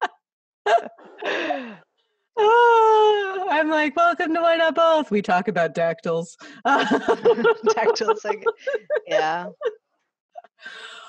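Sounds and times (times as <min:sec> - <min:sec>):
woman sighing: 0:00.7 - 0:01.8
woman wailing: 0:02.4 - 0:03.5
woman speaking: 0:02.4 - 0:09.7.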